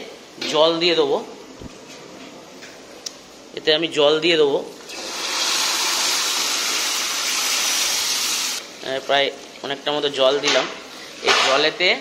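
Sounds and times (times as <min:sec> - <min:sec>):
water sizzling in hot oil: 0:04.9 - 0:08.6.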